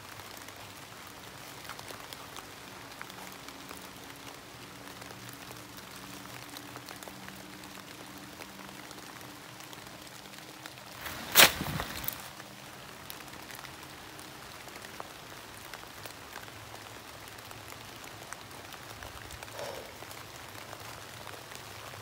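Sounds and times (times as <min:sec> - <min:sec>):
light rain falling: 0:00.0 - 0:22.0.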